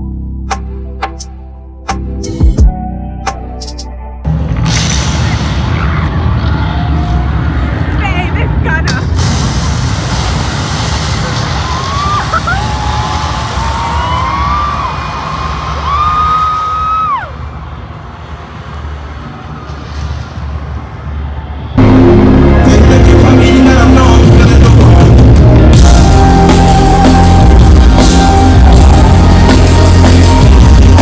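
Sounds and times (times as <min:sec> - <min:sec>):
intro audio: 0:00.0 - 0:16.0, 0:17.4 - 0:31.0
loud crowd noise: 0:04.3 - 0:31.0
loud concert music with heavy bass: 0:10.9 - 0:17.2, 0:21.8 - 0:31.0.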